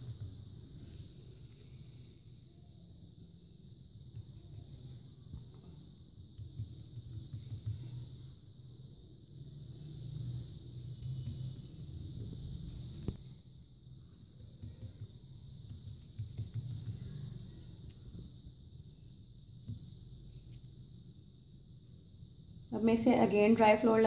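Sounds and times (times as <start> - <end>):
steady high whine: 0.0 - 24.0.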